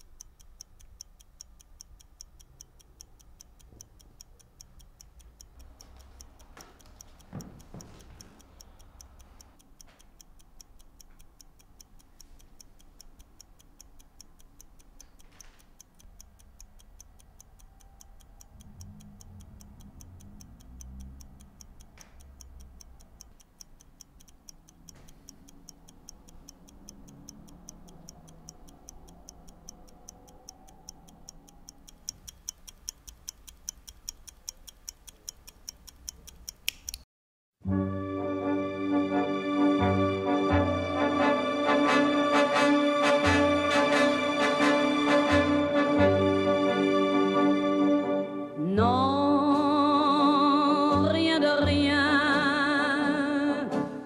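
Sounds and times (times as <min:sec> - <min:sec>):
stopwatch ticking: 0:00.0 - 0:37.1, 0:39.6 - 0:47.5.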